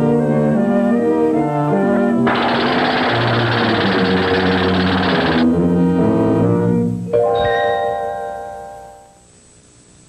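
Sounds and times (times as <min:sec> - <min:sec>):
cartoon jackhammer rattle: 0:02.3 - 0:05.5.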